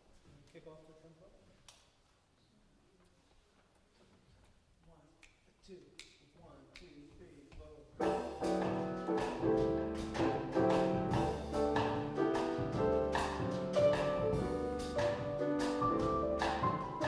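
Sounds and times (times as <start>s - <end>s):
drums: 8.0s - 17.0s
grand piano chords: 8.0s - 17.0s
upright bass: 8.0s - 17.0s.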